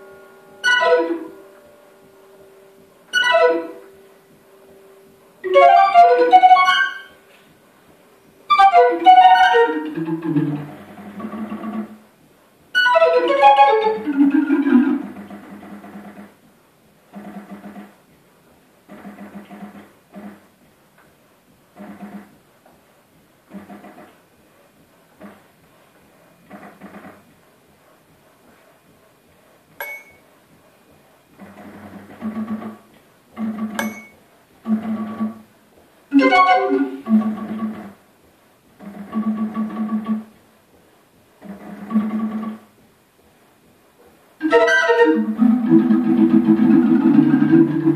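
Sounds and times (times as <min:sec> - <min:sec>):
bright metallic bell strikes: 0:29.8 - 0:30.2, 0:33.8 - 0:34.2
barrel organ low held notes: 0:44.4 - 0:47.9.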